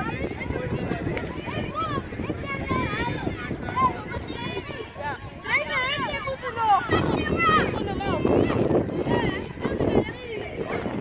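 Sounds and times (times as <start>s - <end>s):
children chattering and calling out: 0.0s - 11.0s
wind buffeting microphone: 0.0s - 11.0s.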